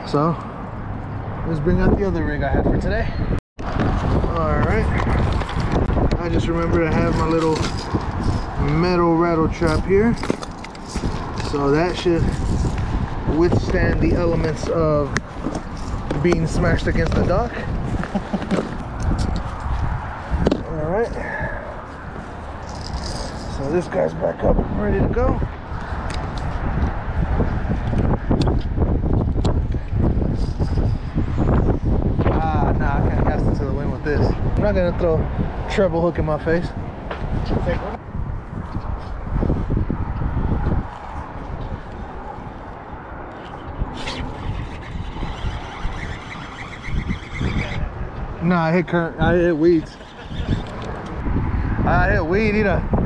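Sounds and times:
wind rumble on microphone: 0.0s - 53.0s.

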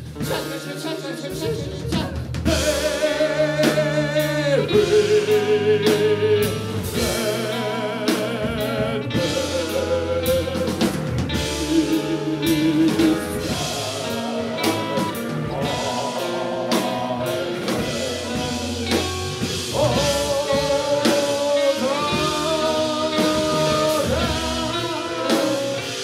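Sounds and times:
live rock band playing: 0.0s - 26.0s
person singing with vibrato: 0.2s - 26.0s.

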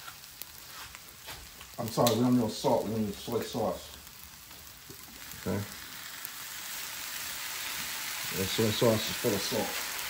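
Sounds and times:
rice sizzling in a skillet: 0.0s - 10.0s.

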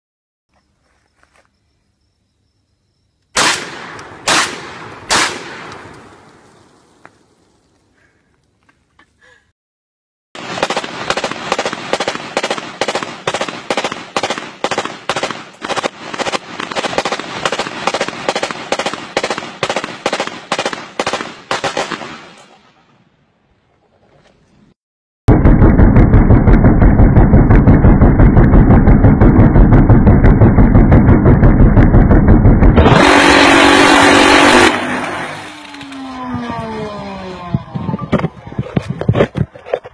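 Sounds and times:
gunshots: 3.4s - 6.4s, 10.4s - 22.5s, 25.3s - 37.2s
distorted rapid gunfire burst: 10.4s - 22.0s, 25.3s - 35.3s.

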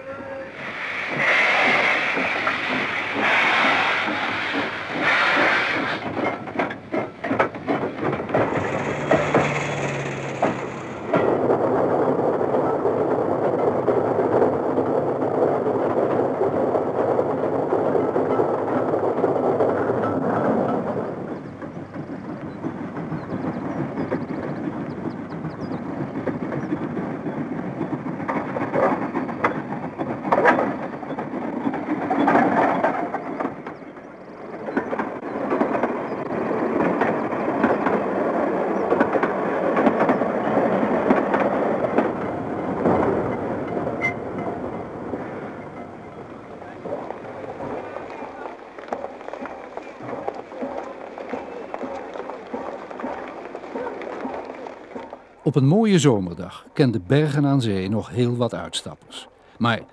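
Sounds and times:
wheels clattering on rails: 0.0s - 59.9s.

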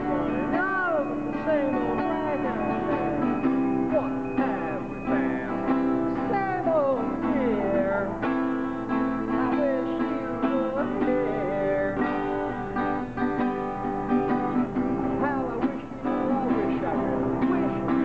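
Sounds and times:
acoustic guitar strumming: 0.0s - 18.0s
sliding guitar melody: 0.0s - 18.0s.

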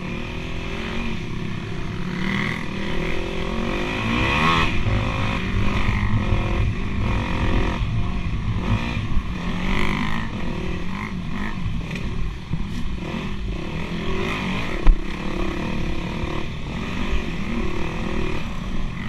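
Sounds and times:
dirt bike engine revving: 0.0s - 12.2s, 12.8s - 19.0s.

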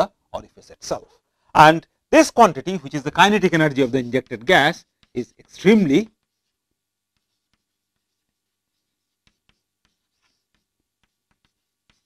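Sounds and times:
chalk writing on blackboard: 2.4s - 12.0s.

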